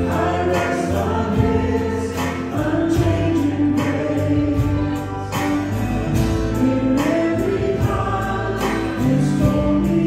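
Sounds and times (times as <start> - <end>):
live band playing: 0.0 - 10.0
people singing together: 0.0 - 10.0.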